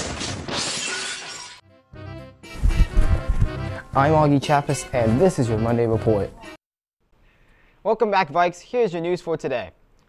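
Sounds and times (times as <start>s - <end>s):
crash with shattering: 0.0s - 1.6s.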